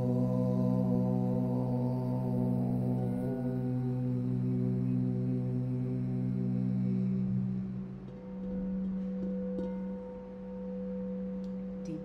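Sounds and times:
low humming tones: 0.0s - 12.0s.

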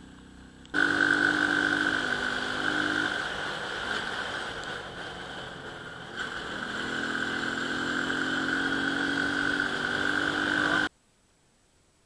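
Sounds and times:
motorcycle engine accelerating: 0.0s - 10.9s
wind: 0.0s - 12.0s.

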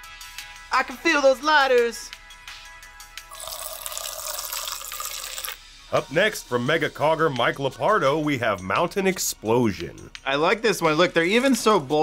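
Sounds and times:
drink pouring into a glass: 3.3s - 5.6s.

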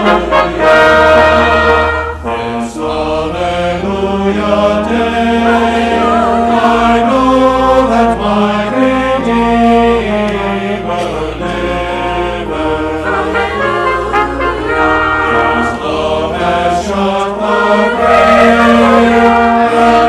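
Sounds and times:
church choir singing: 0.0s - 20.0s
pipe organ: 0.0s - 20.0s.

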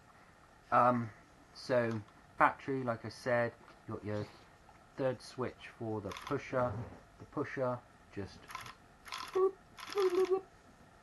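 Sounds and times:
toy blaster motor rattling whirr: 8.5s - 10.4s.

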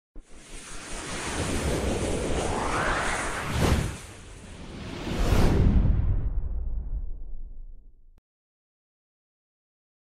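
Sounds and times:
rushing whoosh: 0.2s - 7.2s.

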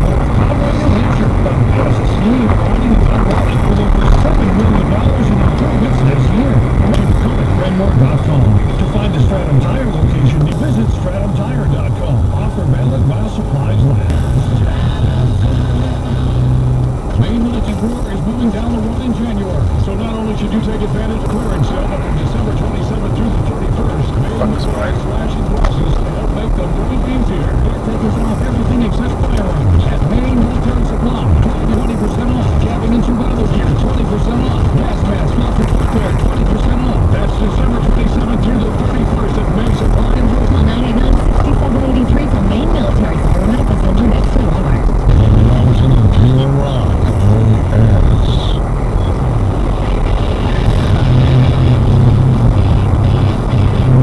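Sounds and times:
car engine and road rumble: 0.0s - 54.0s
car radio voices and music: 0.0s - 54.0s.

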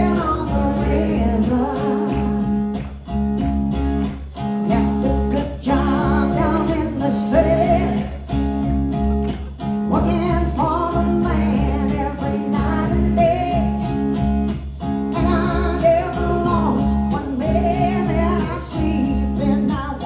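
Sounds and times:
woman singing: 0.0s - 2.8s, 4.6s - 8.3s, 9.8s - 14.0s, 15.1s - 20.0s.

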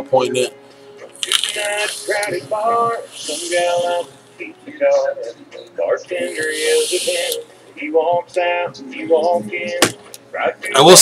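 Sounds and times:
background music with singing: 0.0s - 11.0s
vape coil crackling and hissing: 1.2s - 2.4s, 3.0s - 4.2s, 6.3s - 7.4s.

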